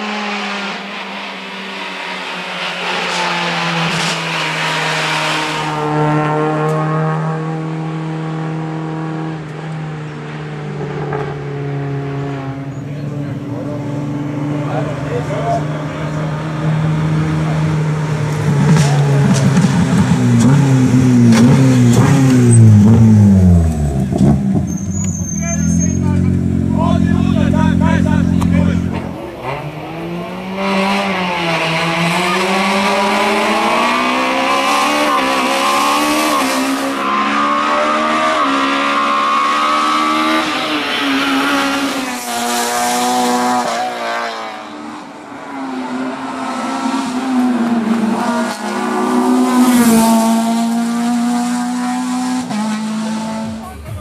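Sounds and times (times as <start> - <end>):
race car engine revving: 0.0 - 54.0.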